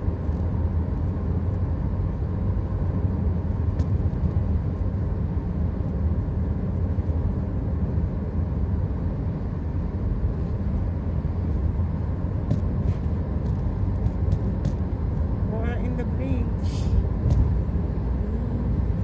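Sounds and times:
car road and engine rumble: 0.0 - 19.0.

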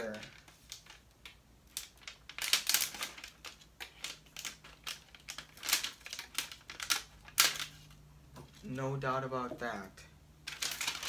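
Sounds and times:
plastic film crinkling: 0.0 - 8.8, 10.4 - 11.0.

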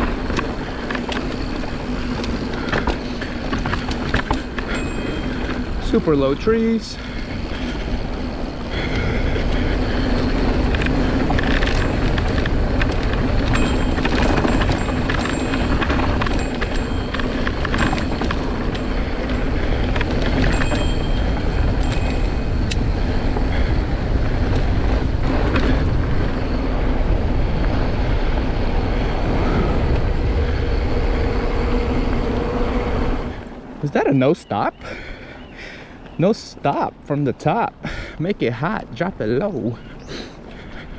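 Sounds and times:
bike rattles and knocks: 0.0 - 32.4
wind on microphone: 0.0 - 34.1
tyres on dirt: 0.0 - 40.9.

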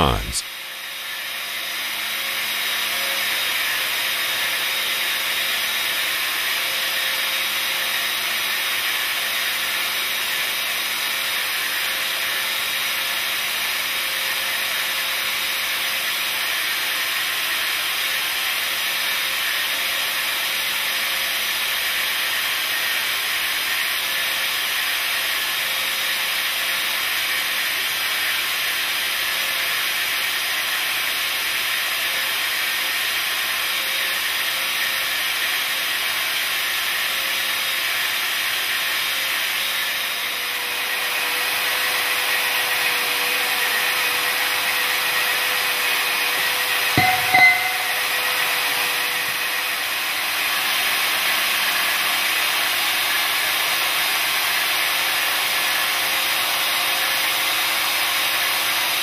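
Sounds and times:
pneumatic pipe cutter whirring: 0.9 - 59.0.

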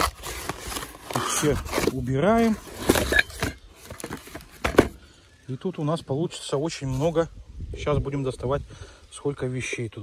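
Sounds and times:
cardboard knocks and scrapes: 0.0 - 5.0.

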